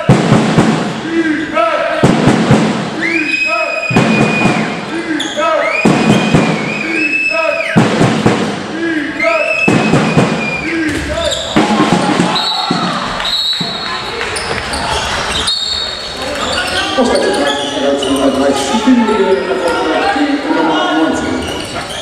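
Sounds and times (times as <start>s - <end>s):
players shouting: 8.6s - 22.0s
high squeaks: 13.4s - 19.9s, 21.1s - 22.0s.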